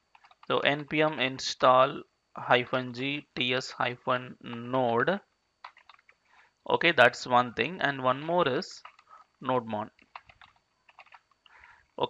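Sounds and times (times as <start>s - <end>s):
faint keyboard keystrokes: 5.6s - 6.2s, 10.0s - 11.4s.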